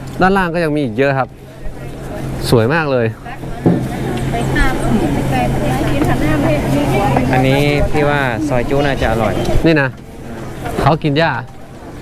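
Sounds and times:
people chattering: 0.0s - 12.0s
steady low hum: 0.0s - 12.0s.

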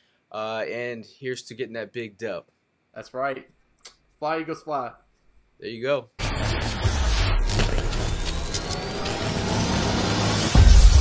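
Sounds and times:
rushing noise riser: 6.2s - 11.0s.

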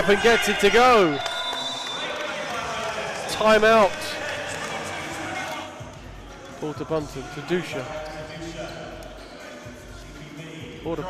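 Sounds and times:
faint background music: 2.4s - 11.0s.

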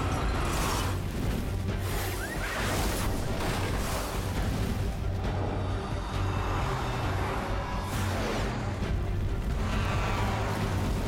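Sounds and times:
movie trailer music: 0.0s - 11.0s.

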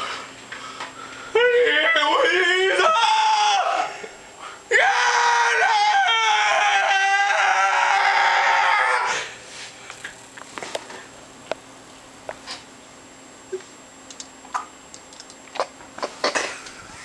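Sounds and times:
man screaming: 1.3s - 4.1s, 4.7s - 9.3s.

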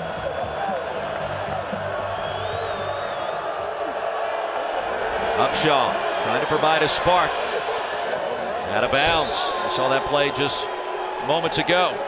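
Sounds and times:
stadium crowd noise: 0.0s - 12.0s.

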